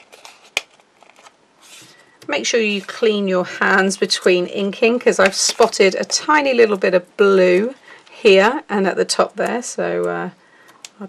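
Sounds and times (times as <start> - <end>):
paper rustle: 0.0 - 3.2.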